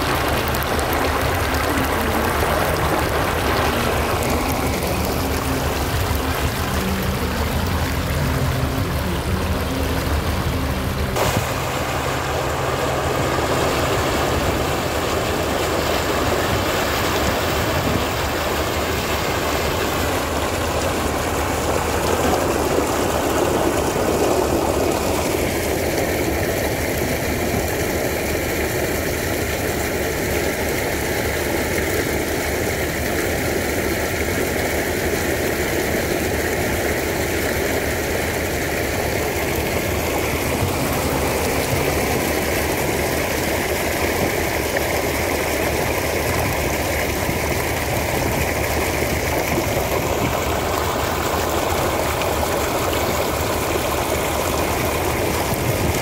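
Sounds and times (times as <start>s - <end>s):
low engine-like hum: 0.0s - 56.0s
slurry gushing from a pipe: 0.0s - 56.0s.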